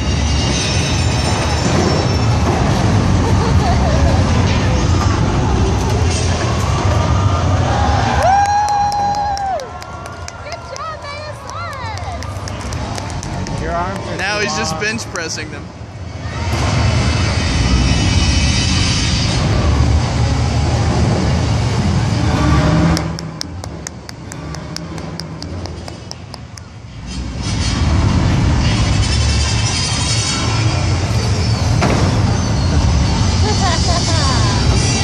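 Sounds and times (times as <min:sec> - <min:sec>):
heavy machinery engine rumbling: 0:00.0 - 0:35.0
quick run of clicks: 0:22.9 - 0:26.8.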